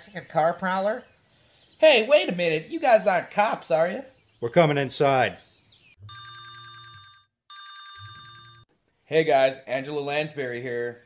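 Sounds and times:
telephone ringing: 6.0s - 8.7s.

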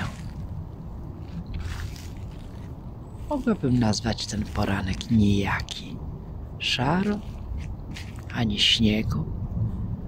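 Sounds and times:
footsteps on dry leaves: 0.0s - 5.8s, 6.9s - 8.4s.

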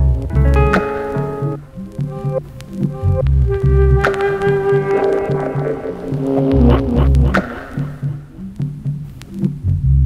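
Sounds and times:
deep bass line: 0.0s - 10.0s
heavy low bass note: 2.9s - 8.4s.

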